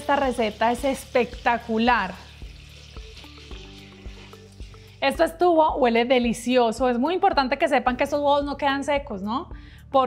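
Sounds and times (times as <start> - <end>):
bacon sizzling in a pan: 0.0 - 6.1
background music with soft beat: 0.2 - 10.0.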